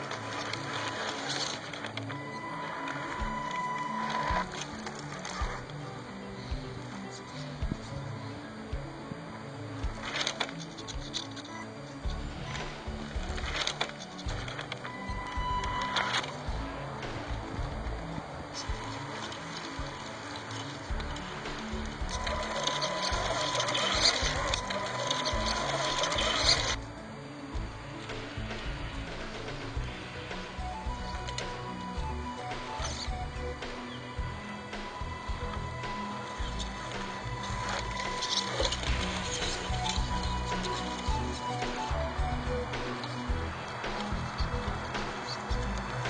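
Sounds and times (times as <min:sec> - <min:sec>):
background music: 0:00.0 - 0:46.0
electric motor whine: 0:00.0 - 0:46.0.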